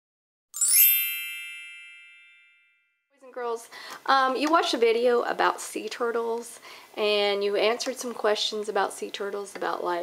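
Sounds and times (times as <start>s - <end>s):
bright chime: 0.6s - 3.0s.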